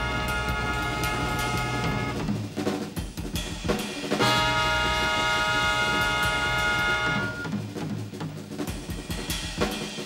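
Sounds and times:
brass section holding a chord: 0.0s - 2.3s, 4.2s - 7.5s.

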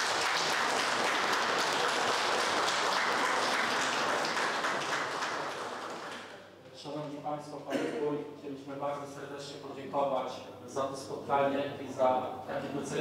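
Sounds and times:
crowd applauding: 0.0s - 6.4s.

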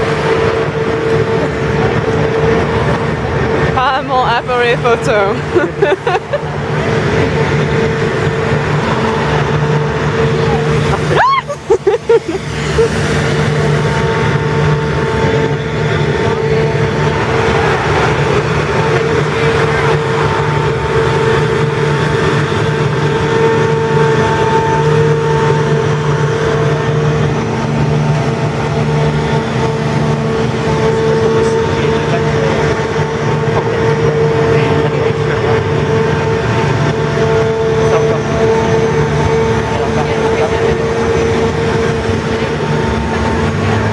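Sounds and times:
loud machine drone: 0.0s - 43.9s.

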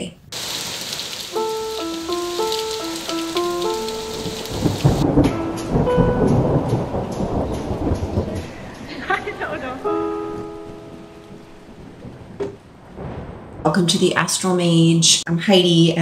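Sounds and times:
heavy rain: 0.3s - 14.7s
short melody of held notes: 1.4s - 6.8s
thunder rumbling: 1.4s - 15.3s.

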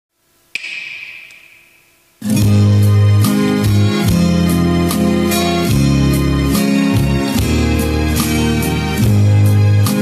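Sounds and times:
finger snap with ringing tail: 0.6s - 2.1s.

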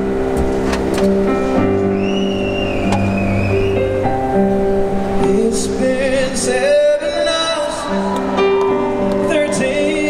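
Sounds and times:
keyboard chords: 0.0s - 10.0s.

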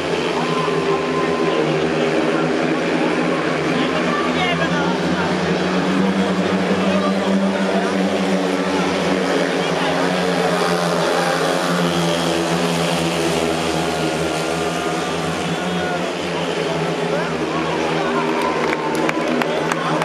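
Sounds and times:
motorcycles racing engine drone: 0.0s - 20.0s.

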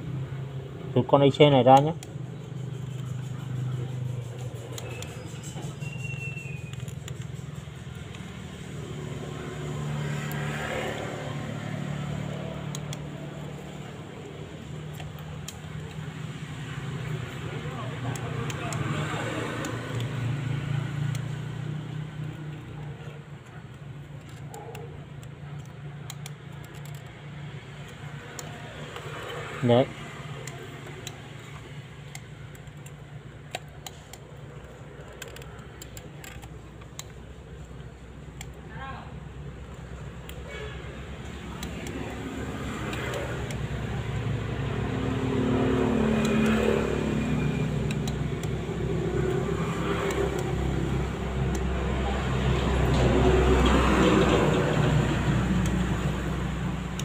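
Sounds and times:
small clicks: 1.6s - 38.6s, 39.6s - 57.0s.

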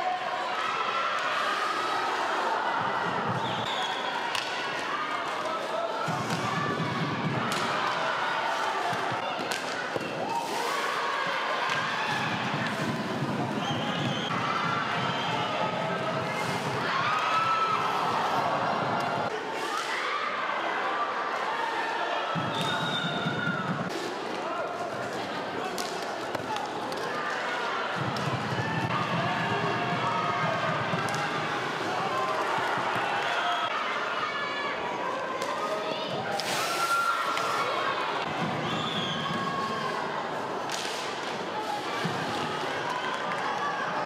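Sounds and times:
crowd talking and shouting: 0.0s - 44.0s.

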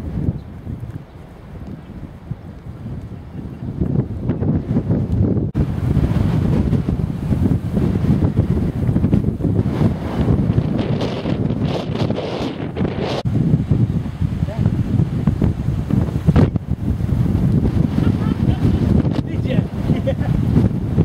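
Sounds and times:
wind buffeting microphone: 0.0s - 21.0s.

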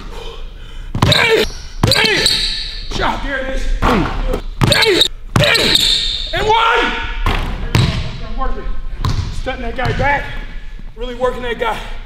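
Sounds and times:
basketball bouncing: 0.9s - 2.4s, 4.6s - 5.9s, 9.0s - 10.0s
man calling out: 1.0s - 3.4s, 4.1s - 7.1s.

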